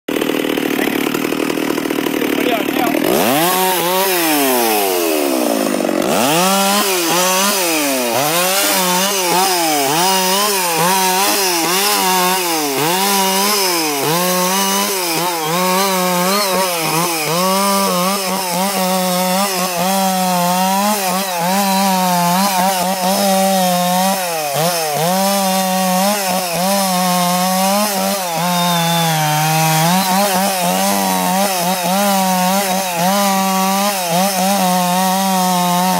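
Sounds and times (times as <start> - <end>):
chainsaw cutting branches: 0.1 - 35.9.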